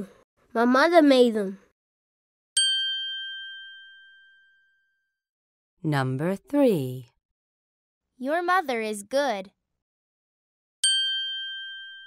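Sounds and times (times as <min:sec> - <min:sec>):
high bell-like ding: 0:02.6 - 0:05.2, 0:10.8 - 0:12.0.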